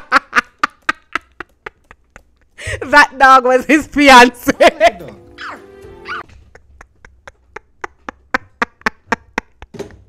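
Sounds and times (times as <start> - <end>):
woman laughing hard: 6.1 - 9.7.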